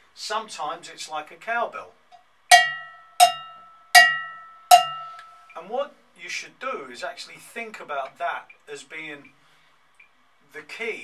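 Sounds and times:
cowbell metronome strokes: 0:02.5 - 0:05.5.

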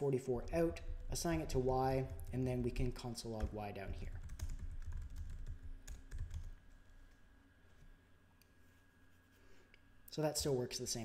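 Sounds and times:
computer keyboard typing: 0:00.4 - 0:06.7.

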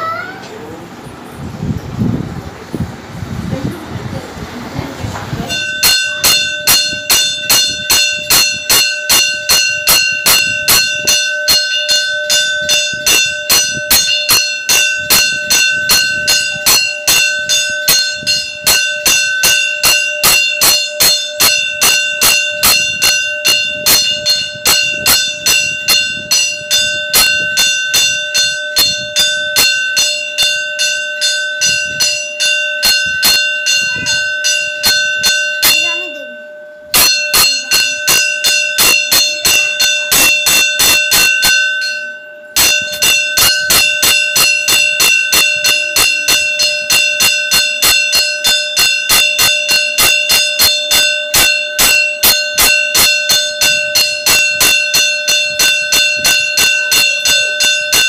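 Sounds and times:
temple bell ringing rapidly: 0:00.0 - 0:58.0.

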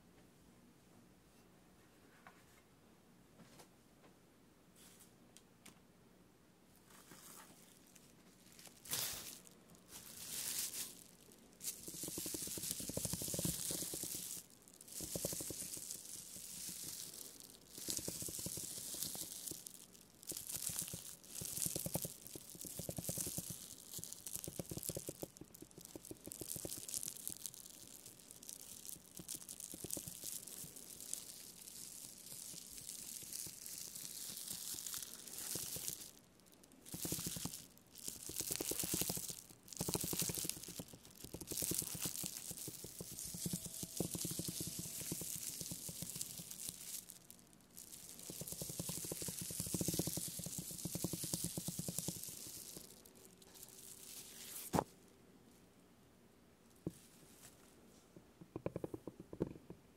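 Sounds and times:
rubber ball rolling on bubble wrap: 0:07.0 - 0:54.9, 0:56.8 - 0:59.8.

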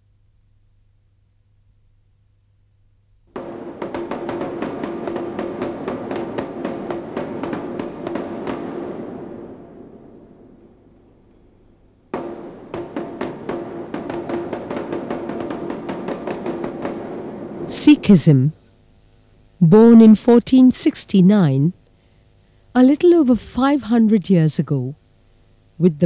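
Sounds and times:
kettledrum roll: 0:03.3 - 0:11.4, 0:12.1 - 0:18.4.

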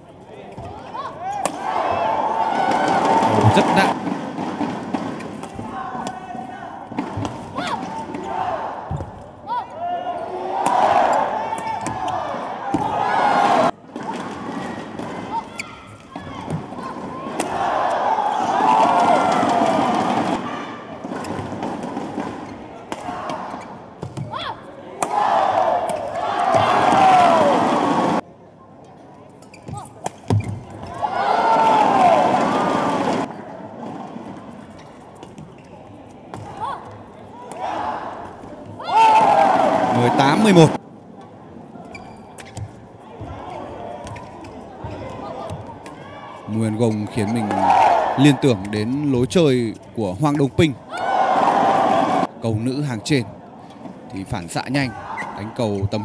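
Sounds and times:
crowd shouting and cheering: 0:00.0 - 0:04.7, 0:05.4 - 0:28.2, 0:30.8 - 0:33.8, 0:36.4 - 0:40.8, 0:43.0 - 0:53.2, 0:54.2 - 0:56.0.

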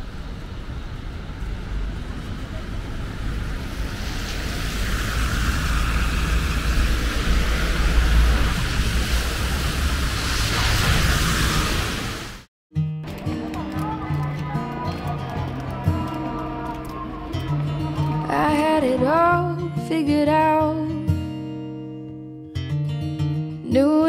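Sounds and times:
wind rumbling on microphone: 0:00.0 - 0:12.4
traffic hiss on wet road: 0:00.0 - 0:12.5.

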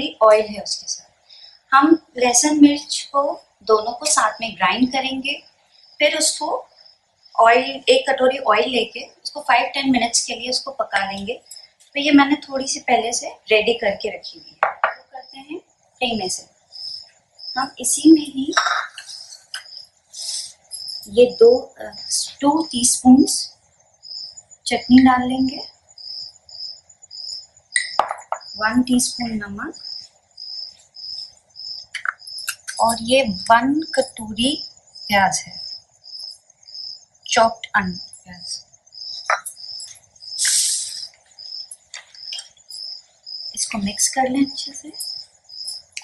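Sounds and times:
high chirping: 0:00.0 - 0:46.0.

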